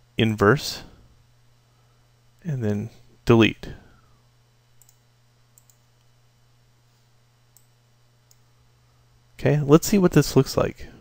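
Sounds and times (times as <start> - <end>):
faint computer mouse clicks: 4.8 - 5.0, 5.6 - 5.8.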